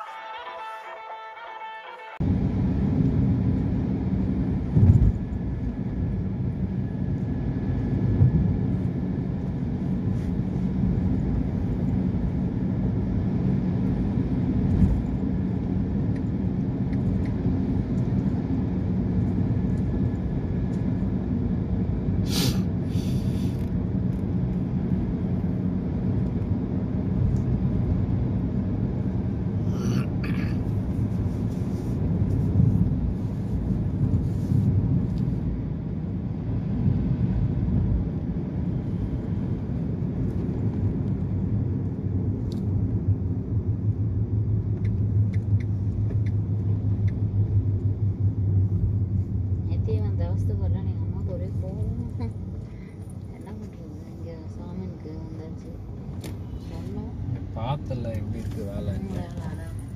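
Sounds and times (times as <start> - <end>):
car engine and road rumble: 0.0 - 59.9
short bursts of hiss: 22.2 - 23.6.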